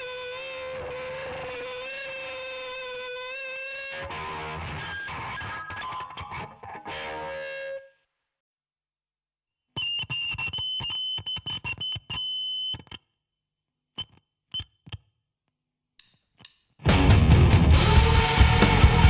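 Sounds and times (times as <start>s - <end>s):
distorted electric guitar: 0.0s - 7.9s, 16.8s - 19.0s
rock music: 3.3s - 7.8s, 16.8s - 19.0s.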